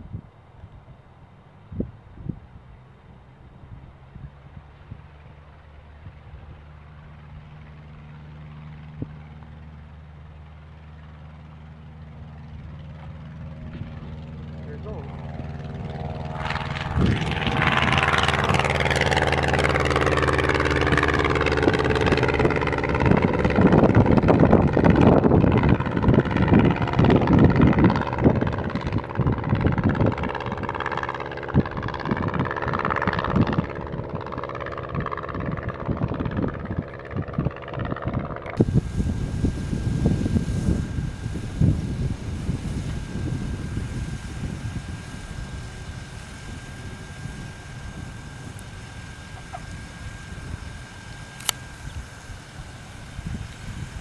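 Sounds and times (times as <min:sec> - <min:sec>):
propeller aircraft engine drone: 0:00.0 - 0:54.0
gusty rushing noise: 0:13.7 - 0:30.8, 0:35.0 - 0:54.0.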